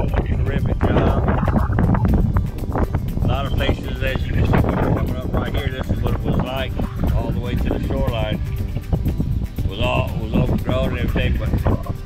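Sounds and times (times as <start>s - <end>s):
music with wavering singing: 0.0s - 12.0s
wind buffeting microphone: 0.0s - 12.0s.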